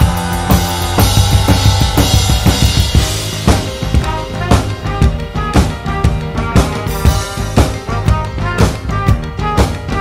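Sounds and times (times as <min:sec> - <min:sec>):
band recording: 0:00.0 - 0:10.0
drum kit playing: 0:00.0 - 0:10.0.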